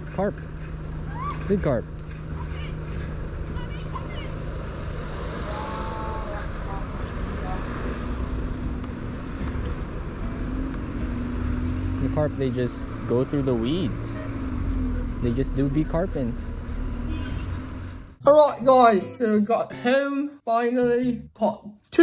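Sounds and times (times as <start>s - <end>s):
road traffic rumble: 0.0s - 19.4s
vehicle engines humming: 0.0s - 19.7s.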